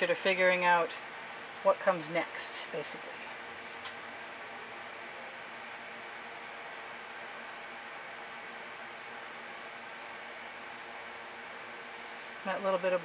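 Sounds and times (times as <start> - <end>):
faint hum: 0.0 - 13.0.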